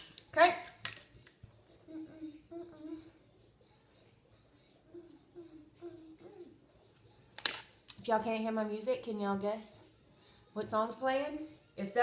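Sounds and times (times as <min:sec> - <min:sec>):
faint tune: 0:01.5 - 0:07.2.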